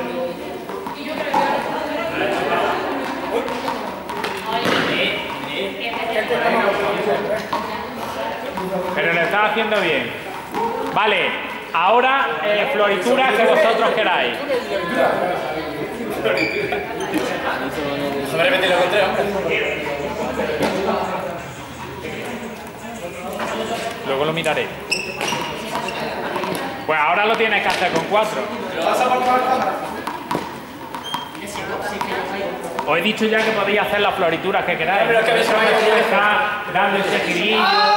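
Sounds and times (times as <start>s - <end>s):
voices talking in a large hall: 0.0s - 37.9s.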